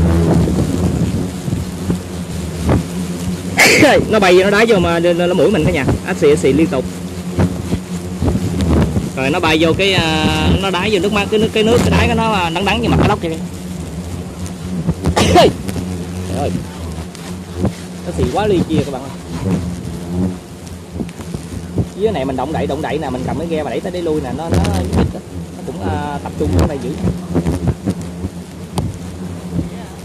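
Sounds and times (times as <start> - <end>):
hornets buzzing: 0.0 - 30.0
low rumbling noise: 0.0 - 30.0.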